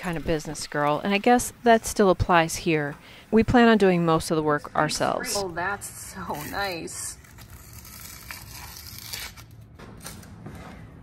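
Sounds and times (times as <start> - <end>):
wallpaper scraping and tearing: 6.2 - 10.3.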